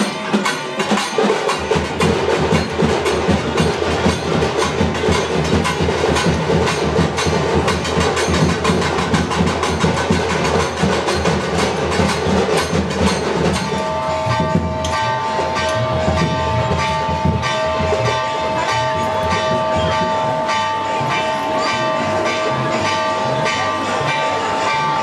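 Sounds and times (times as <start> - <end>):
fast continuous drumming: 0.0 - 25.0.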